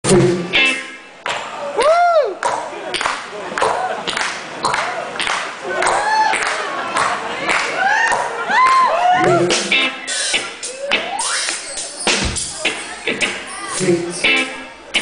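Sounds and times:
live electronic pop band: 0.0s - 3.8s, 8.0s - 15.0s
sharp noisy beat hits: 9.5s - 15.0s.

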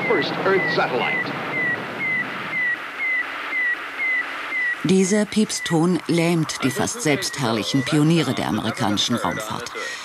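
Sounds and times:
man talking: 0.0s - 1.4s, 6.6s - 10.0s
radio hiss: 0.0s - 10.0s
short radio beeps: 0.0s - 10.0s.

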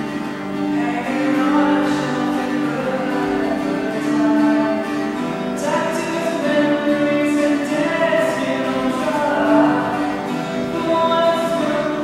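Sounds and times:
slow music with singing: 0.0s - 12.0s.

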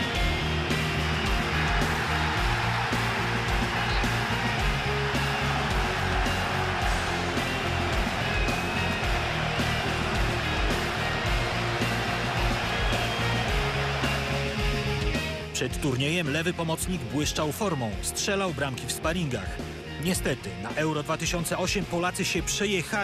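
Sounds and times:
background music with bass and beat: 0.0s - 23.0s.

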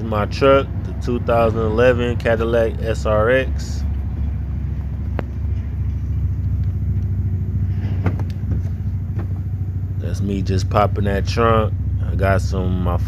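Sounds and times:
vehicle engine idling: 0.0s - 13.0s
rear liftgate popping open: 7.7s - 9.6s.

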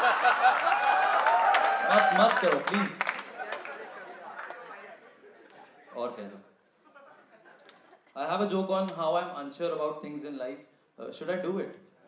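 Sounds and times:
audience chatter in a hall: 1.2s - 8.6s.

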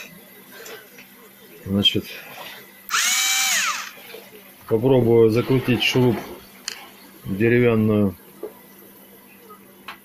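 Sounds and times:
cordless screwdriver motor whine: 2.9s - 4.0s.

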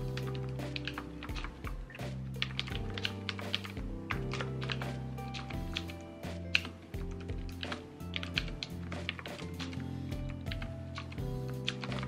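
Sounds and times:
background music with sustained chords: 0.0s - 12.0s.

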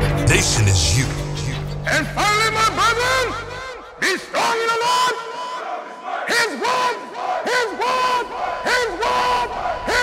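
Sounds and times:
men shouting a chant: 3.0s - 10.0s.

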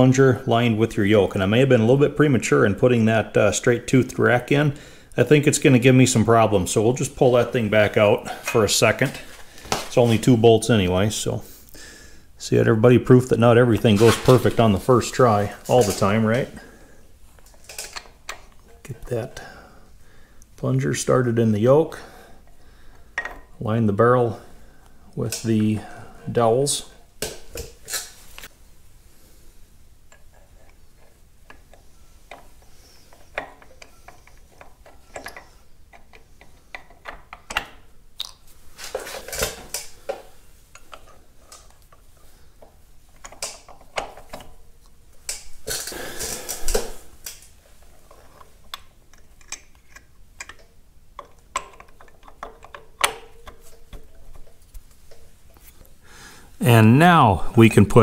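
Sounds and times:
metal parts clinking and scraping: 47.8s - 55.2s.

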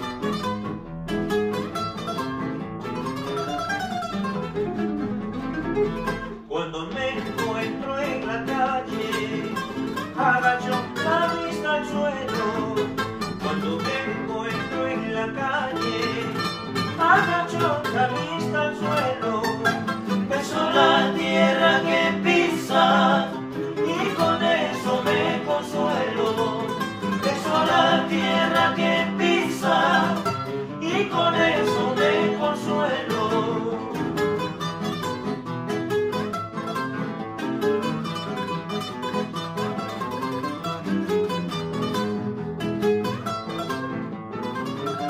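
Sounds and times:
acoustic guitars playing folk song: 0.0s - 45.0s.

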